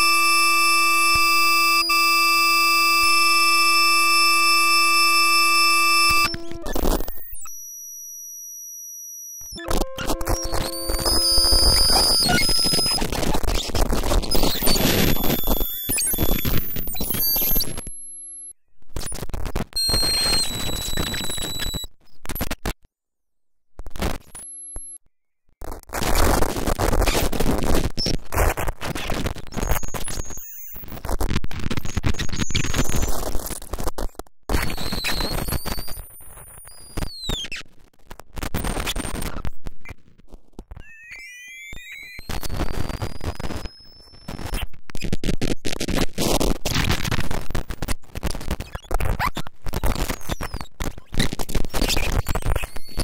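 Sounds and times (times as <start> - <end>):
harsh electronic noise bursts: 0.0 - 18.2, 19.5 - 21.9
harsh electronic crackling: 0.0 - 22.8, 25.6 - 53.0
whistling high tones: 4.6 - 13.0.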